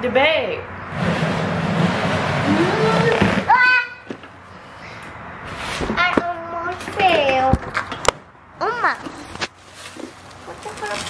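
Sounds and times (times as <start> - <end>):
crackling handling noise: 9.0 - 11.0.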